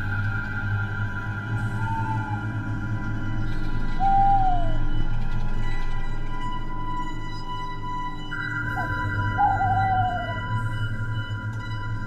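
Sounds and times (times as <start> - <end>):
eerie horror drone music: 0.0 - 12.0
hooting tone sagging in pitch: 8.8 - 10.4.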